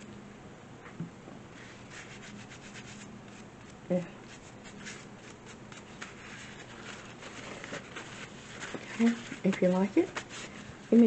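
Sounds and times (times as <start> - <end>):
hand rubbing paper and cardboard: 1.6 - 11.0.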